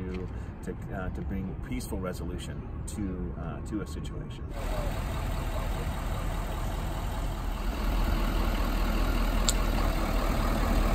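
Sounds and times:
truck engine idling: 0:04.5 - 0:10.9.

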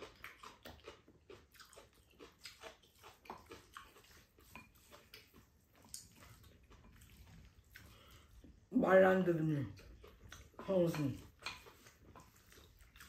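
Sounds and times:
people chewing: 0:00.0 - 0:13.0.

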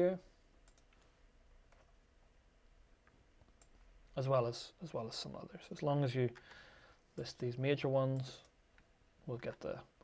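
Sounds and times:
low room noise: 0:00.0 - 0:10.0
computer mouse clicks: 0:00.6 - 0:01.1, 0:03.4 - 0:03.8.

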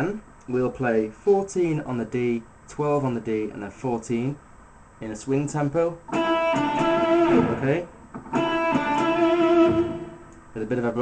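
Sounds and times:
electric guitar picked notes: 0:06.1 - 0:10.6.

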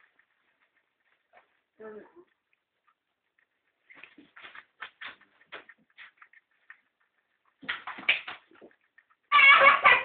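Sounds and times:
guinea pigs chewing: 0:00.0 - 0:10.0.

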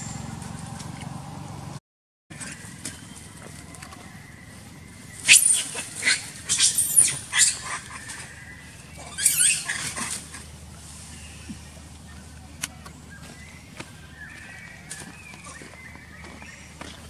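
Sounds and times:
monkeys screaming: 0:05.0 - 0:10.6.

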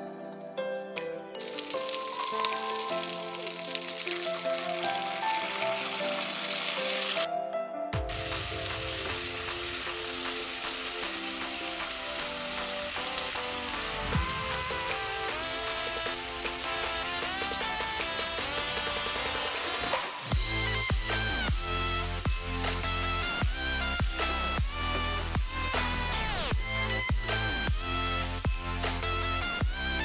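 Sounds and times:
background music: 0:00.0 - 0:30.0
food sizzling in hot oil: 0:01.4 - 0:07.3, 0:08.1 - 0:21.1.

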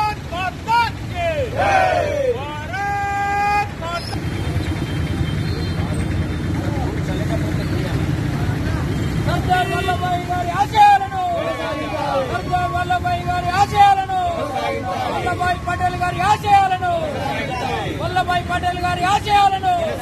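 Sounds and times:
men shouting: 0:00.0 - 0:03.8, 0:09.4 - 0:20.0.

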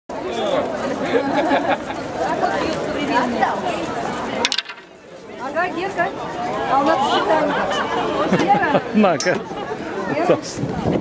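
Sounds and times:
crowd chatter: 0:00.1 - 0:11.0.

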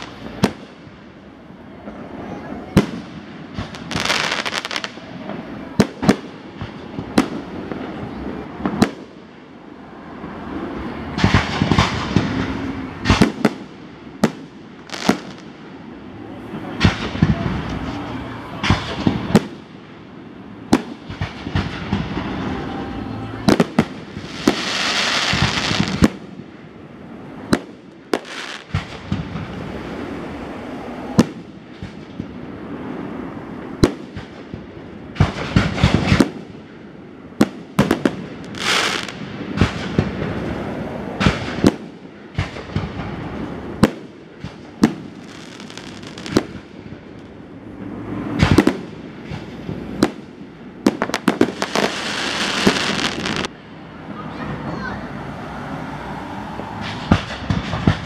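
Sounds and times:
fireworks hissing rushes: 0:00.0 - 0:54.9, 0:56.0 - 0:58.0
fireworks bangs: 0:00.0 - 0:55.0, 0:56.4 - 0:58.0.

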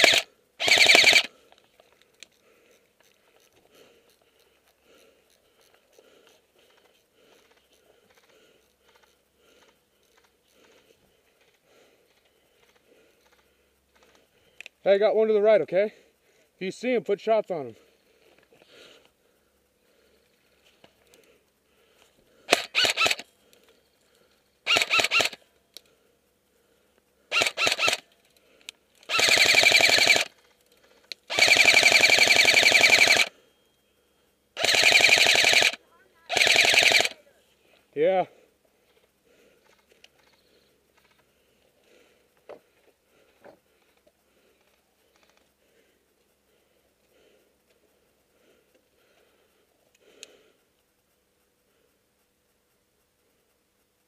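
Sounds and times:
airsoft rifle full-auto bursts: 0:00.0 - 0:01.5, 0:22.5 - 0:23.3, 0:24.6 - 0:25.5, 0:27.3 - 0:28.1, 0:29.0 - 0:30.5, 0:31.2 - 0:33.4, 0:34.6 - 0:37.2.

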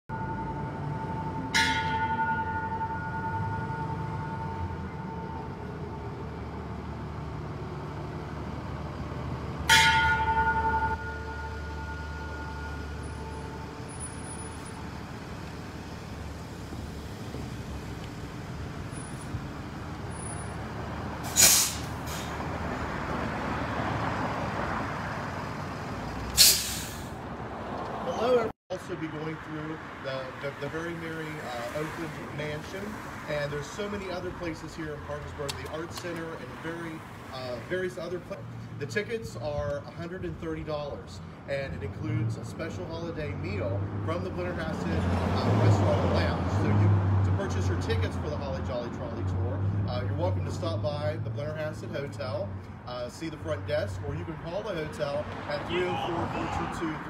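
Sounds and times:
bus idling: 0:00.1 - 0:27.6
air hisses: 0:21.2 - 0:22.4, 0:26.3 - 0:27.2.

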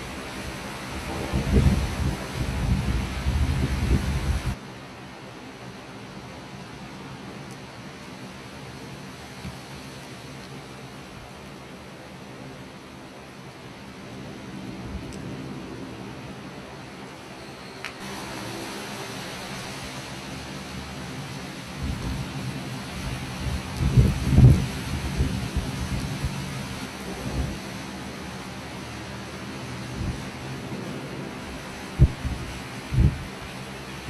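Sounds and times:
torrential rain hissing: 0:00.0 - 0:34.0.

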